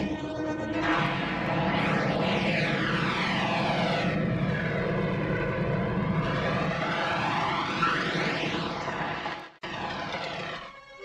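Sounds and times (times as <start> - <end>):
phasing engine drone: 0.0 - 11.0.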